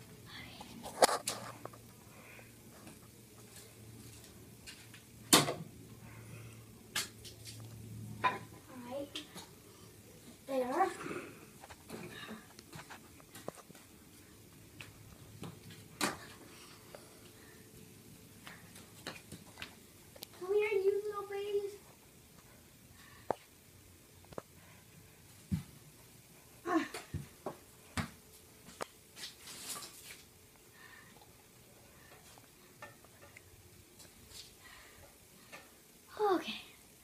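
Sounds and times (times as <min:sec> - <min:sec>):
low steady hum: 0:00.0 - 0:37.0
child's voice: 0:08.7 - 0:09.3, 0:10.5 - 0:11.2, 0:20.4 - 0:21.8, 0:36.1 - 0:36.8.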